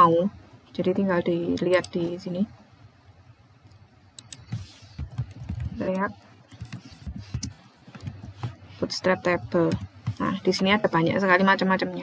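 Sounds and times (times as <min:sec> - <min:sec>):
typing on computer keyboard: 0:04.2 - 0:08.6.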